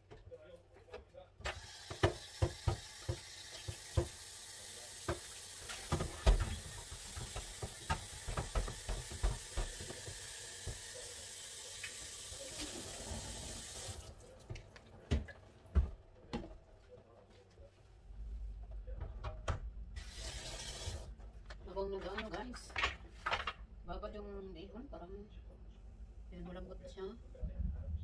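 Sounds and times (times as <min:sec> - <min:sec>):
tap running into sink: 0:01.8 - 0:04.3, 0:05.0 - 0:11.1.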